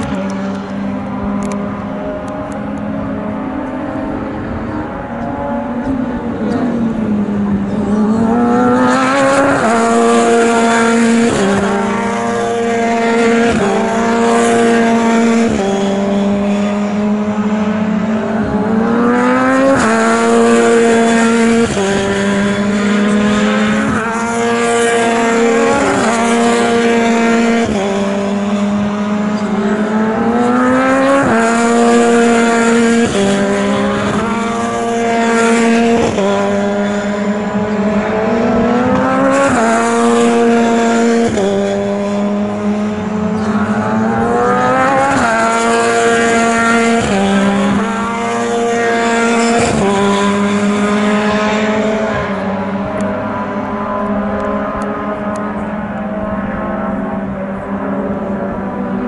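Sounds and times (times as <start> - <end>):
race car engines at speed: 0.0 - 59.0.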